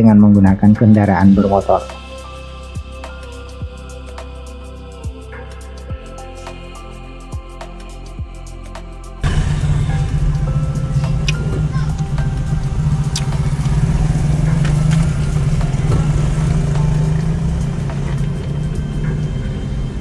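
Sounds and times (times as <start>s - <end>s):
car engine and tyres rumbling: 9.2s - 20.0s.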